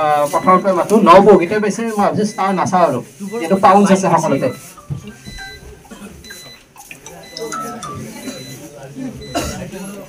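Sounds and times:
high-pitched beeps: 0.0 - 9.5
murmur of voices: 0.0 - 10.0.

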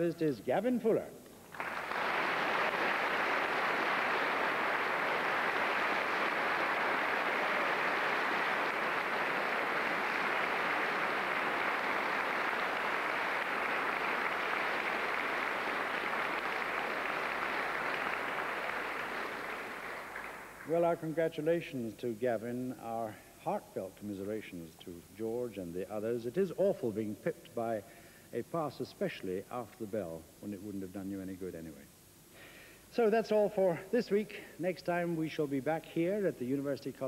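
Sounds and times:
audience applauding: 1.5 - 20.8.

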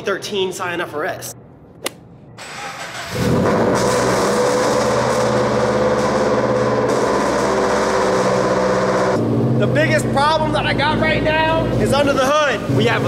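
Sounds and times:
car engine starting and idling: 2.4 - 13.0.

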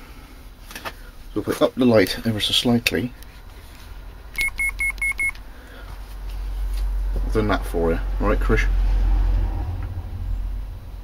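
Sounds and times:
low hum: 3.1 - 11.0
high electronic beeps: 4.4 - 5.4.

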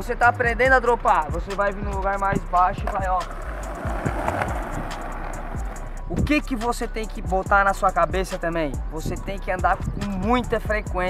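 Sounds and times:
music with a steady beat: 0.1 - 11.0
skateboard wheels on rough concrete: 2.8 - 5.9.

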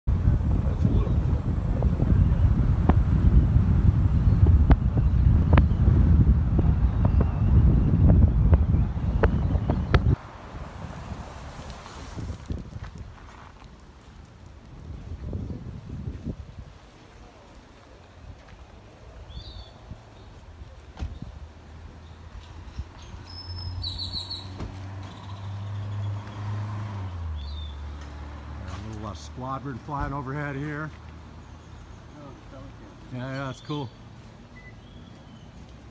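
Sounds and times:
wind buffeting microphone: 0.1 - 17.6
bird chirps: 22.0 - 26.4, 33.4 - 35.6.

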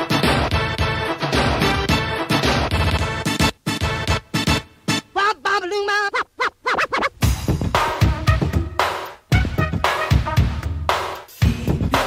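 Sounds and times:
turntable scratching: 2.5 - 3.5, 5.2 - 10.3
drum beat: 6.5 - 12.0.

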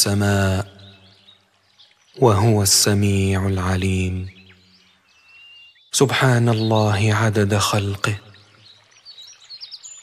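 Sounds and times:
faint bird chirping: 0.0 - 10.0.

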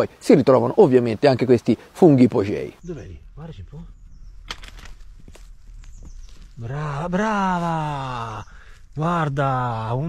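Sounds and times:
crunching over grass and leaves: 4.2 - 9.6.

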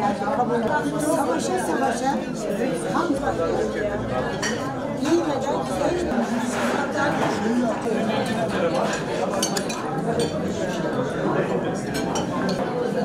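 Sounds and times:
murmur of conversation: 0.0 - 13.0
tableware clinking: 8.7 - 10.4, 11.9 - 12.6.

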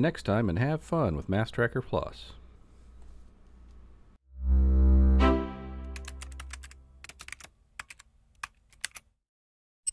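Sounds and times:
quick irregular typing clicks: 6.0 - 9.0.

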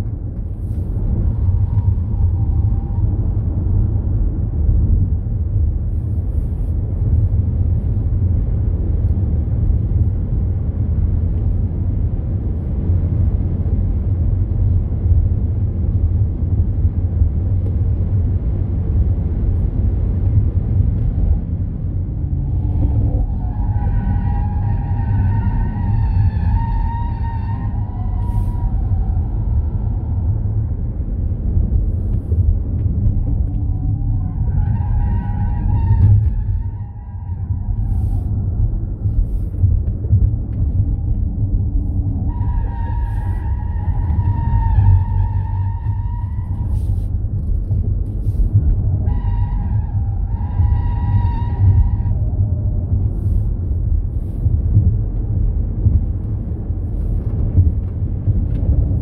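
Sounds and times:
wind and road noise: 0.0 - 59.0.

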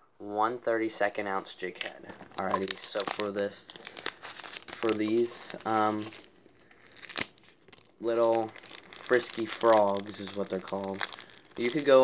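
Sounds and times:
plastic packaging crinkling: 1.6 - 12.0.

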